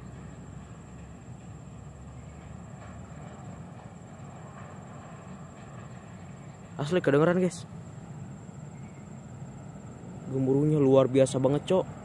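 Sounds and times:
train rumbling in tunnel: 0:00.0 - 0:12.0.

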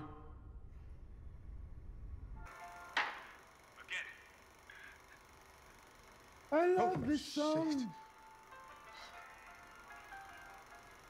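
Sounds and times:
low steady rumble: 0:00.0 - 0:02.5.

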